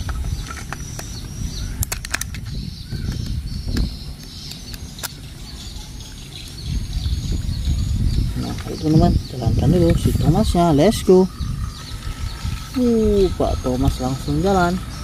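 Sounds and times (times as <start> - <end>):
low steady rumble: 0.0 - 15.0.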